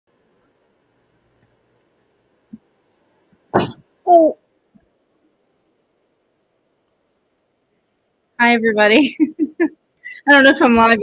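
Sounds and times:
person exclaiming: 4.1 - 4.4.

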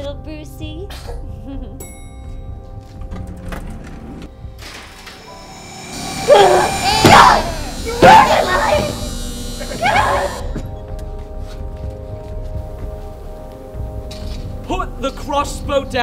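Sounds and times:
background music: 0.0 - 16.0
strained vocal cries: 5.9 - 10.6.

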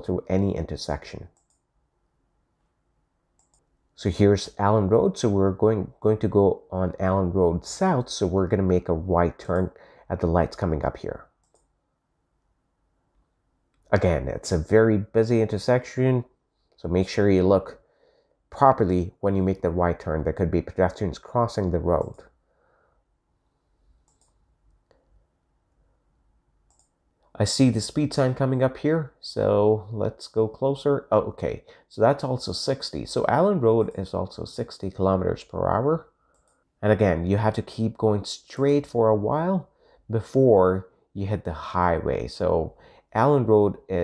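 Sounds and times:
computer mouse clicks: 1.4 - 1.7, 3.4 - 3.7, 11.4 - 11.8, 22.0 - 22.2, 24.0 - 25.1, 26.7 - 27.0, 36.3 - 36.7.

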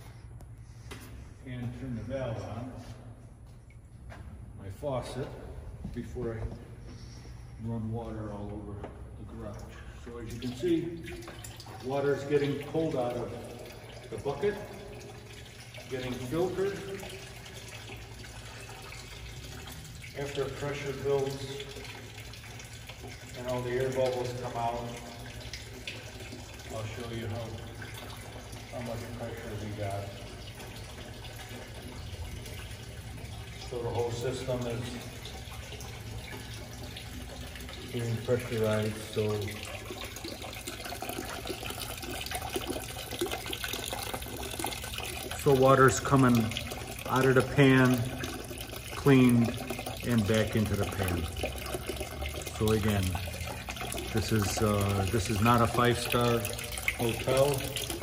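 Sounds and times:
low pump hum: 0.0 - 58.0
water running into bucket: 6.9 - 58.0.

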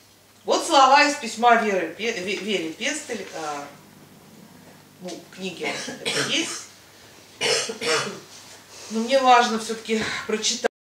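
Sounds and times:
person coughing: 5.6 - 6.7, 7.4 - 8.3.

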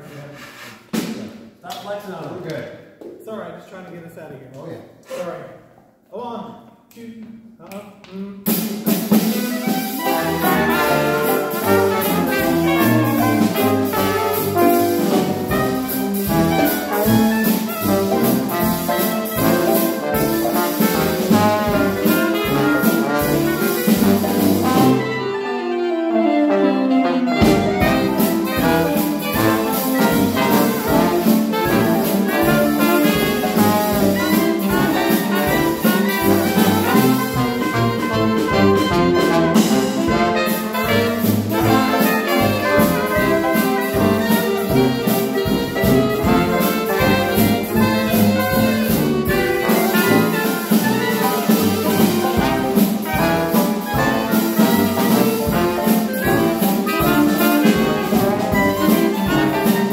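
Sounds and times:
jazz band playing: 8.3 - 59.9.

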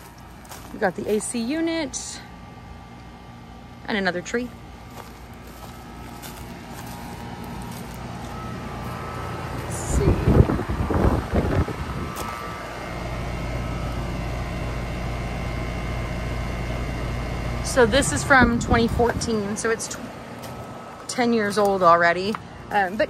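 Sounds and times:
air conditioner condenser humming: 0.0 - 23.0.

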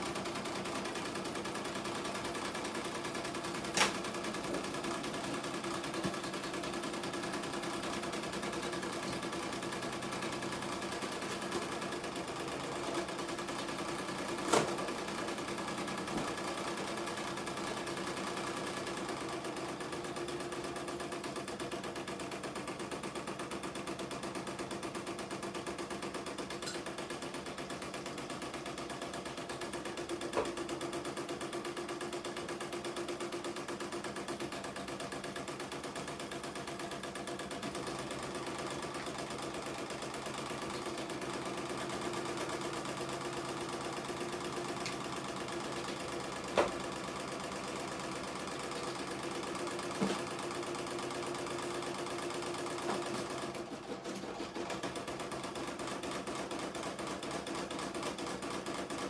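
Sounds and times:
embroidery machine stitching: 0.0 - 59.0.

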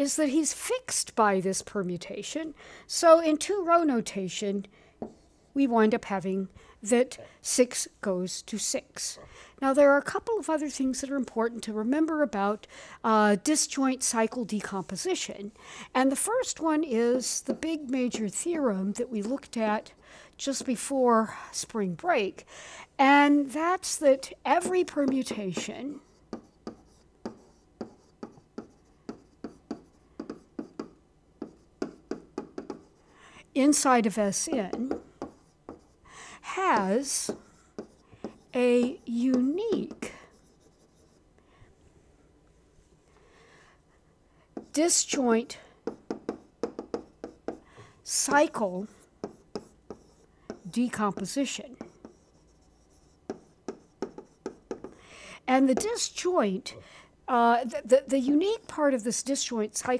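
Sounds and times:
stylus tapping and scratching: 16.2 - 20.9, 23.9 - 33.0, 33.7 - 36.0, 36.6 - 41.2, 44.6 - 55.0, 55.6 - 56.2.

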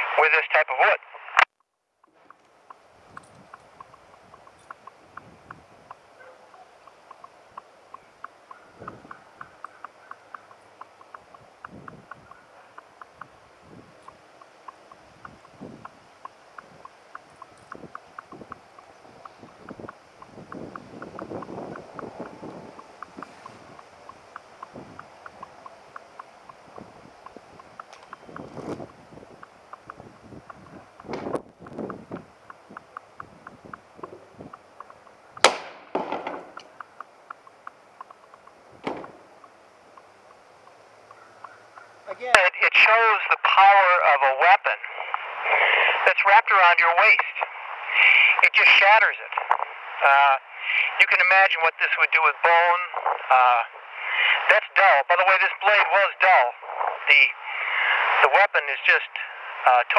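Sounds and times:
sharp knock: 35.4 - 36.6, 38.8 - 39.2.

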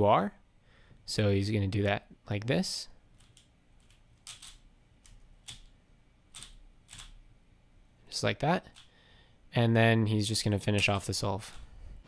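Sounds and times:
puzzle cube layers clicking: 3.2 - 5.7, 6.3 - 7.2.

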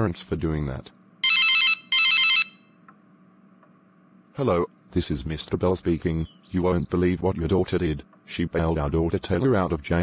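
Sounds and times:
telephone ringing: 1.2 - 2.8.

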